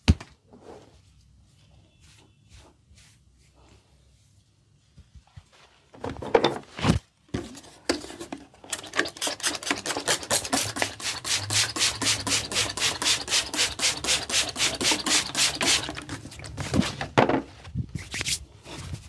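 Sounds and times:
spray bottle spraying mist: 0:09.2 - 0:16.0.

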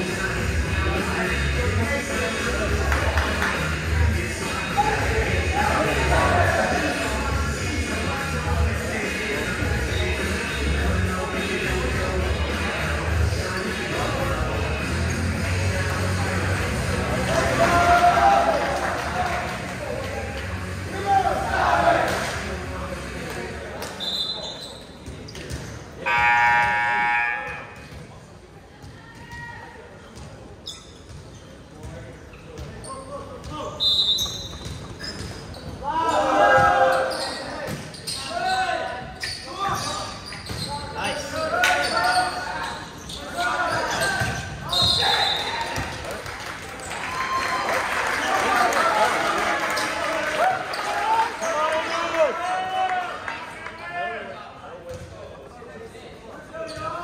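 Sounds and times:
people shouting and cheering: 0:02.5 - 0:23.2, 0:26.0 - 0:27.8, 0:35.8 - 0:37.4, 0:43.3 - 0:54.3
referee whistle blasts: 0:26.0 - 0:27.8, 0:44.7 - 0:45.6.

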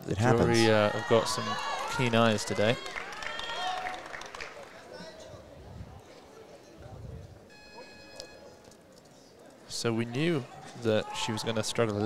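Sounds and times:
faint high electronic tone: 0:07.5 - 0:08.6.

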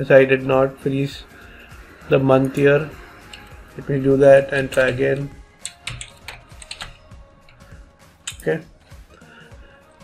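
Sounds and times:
computer keyboard typing: 0:04.6 - 0:07.6.

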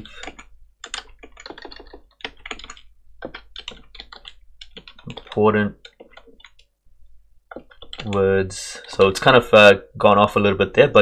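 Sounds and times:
computer keyboard typing: 0:00.0 - 0:06.7, 0:07.5 - 0:09.2.

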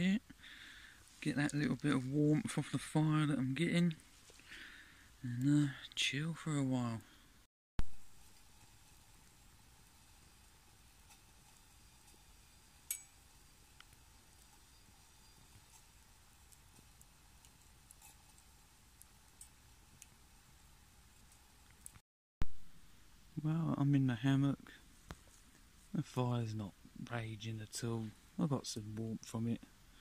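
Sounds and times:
wood fire crackling: 0:00.0 - 0:30.0.

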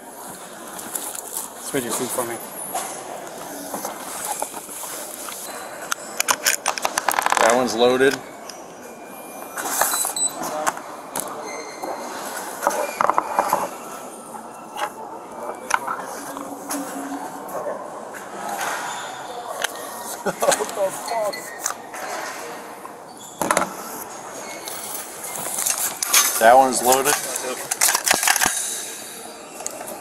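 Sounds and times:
pistol handling clicks and clacks: 0:27.0 - 0:28.7.

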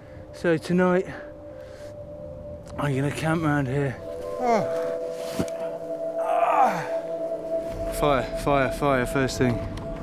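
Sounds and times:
background music drone: 0:00.0 - 0:10.0
man sighing: 0:04.3 - 0:05.1, 0:06.2 - 0:07.2.

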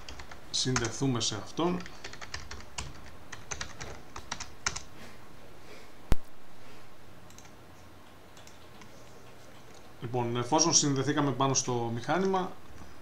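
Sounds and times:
keyboard typing: 0:00.0 - 0:01.0, 0:01.7 - 0:04.9, 0:07.3 - 0:10.0.

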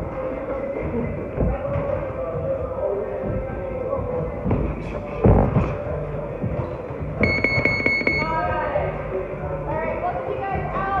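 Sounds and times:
electronic buzzer tone: 0:07.2 - 0:08.4.

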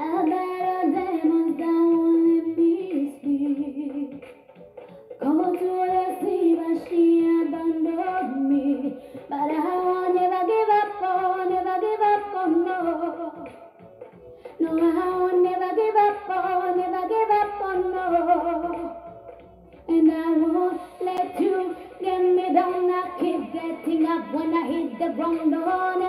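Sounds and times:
woman singing: 0:00.0 - 0:04.3, 0:05.2 - 0:13.8, 0:14.6 - 0:19.3, 0:19.9 - 0:26.0.

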